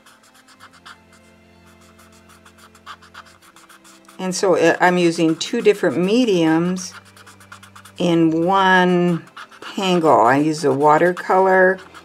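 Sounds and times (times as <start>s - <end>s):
blending stump scratching on paper: 0.0s - 12.0s.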